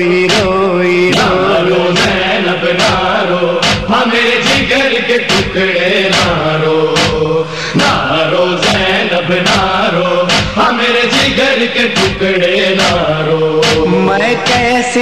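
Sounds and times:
chest-beating rhythm: 0.0s - 15.0s
male voices chanting: 0.2s - 15.0s.

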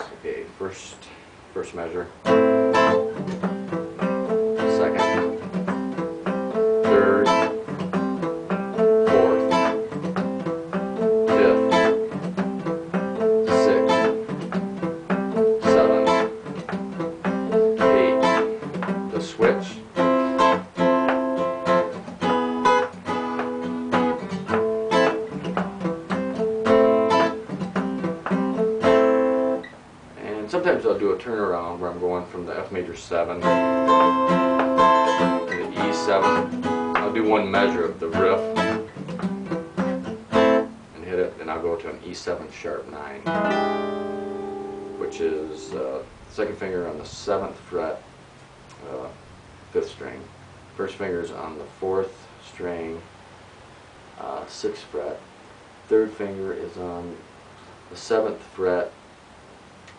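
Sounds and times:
acoustic guitar blues riff: 1.6s - 51.5s.

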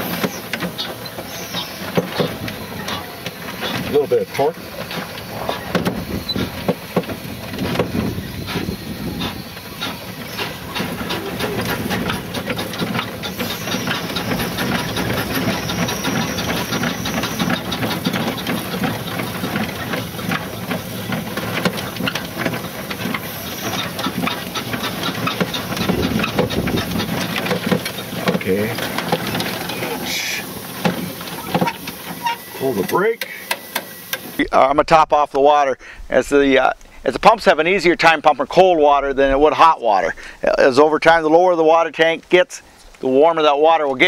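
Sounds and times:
steam hiss: 0.0s - 34.4s
mechanical clicks and rattles: 1.8s - 34.4s.

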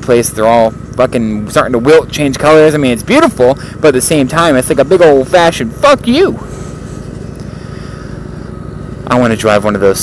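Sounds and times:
motorcycle engine running: 0.0s - 10.0s.

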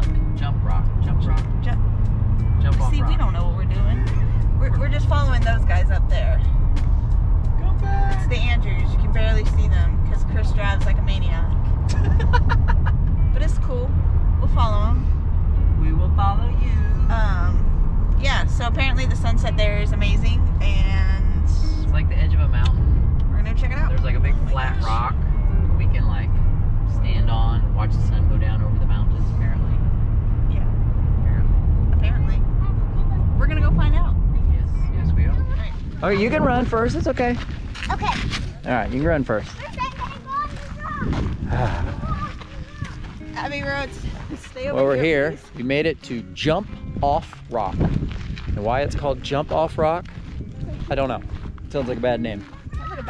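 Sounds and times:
road and engine rumble: 0.0s - 53.0s
people talking: 0.4s - 1.8s, 2.6s - 6.4s, 7.6s - 12.5s, 13.4s - 15.0s, 15.8s - 17.6s, 18.2s - 25.2s, 26.9s - 29.8s, 32.0s - 40.9s, 41.5s - 47.8s, 48.6s - 50.0s.

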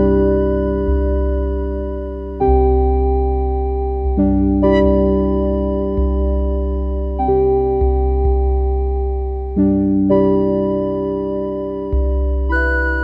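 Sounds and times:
soft piano chords: 0.0s - 13.0s.

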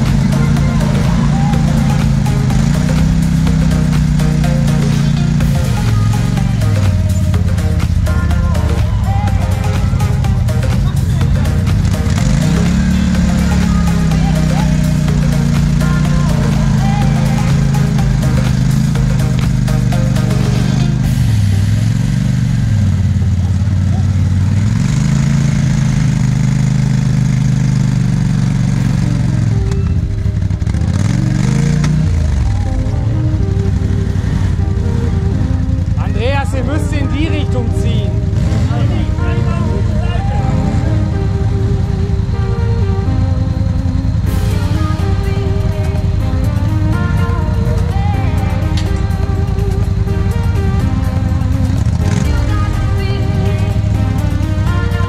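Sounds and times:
voices: 0.0s - 22.2s, 29.6s - 55.0s
music playing: 0.0s - 55.0s
quad bike engine revving: 0.0s - 55.0s.

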